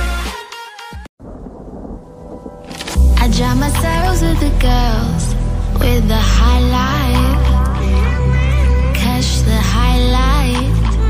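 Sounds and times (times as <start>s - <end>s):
thunder and rain sound effect: 1.2s - 8.0s
music beat: 2.6s - 11.0s.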